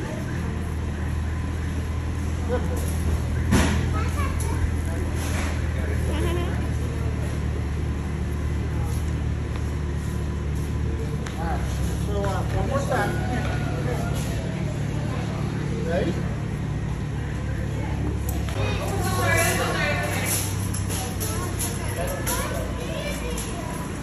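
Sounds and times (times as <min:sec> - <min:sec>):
crowd voices: 0:00.0 - 0:24.0.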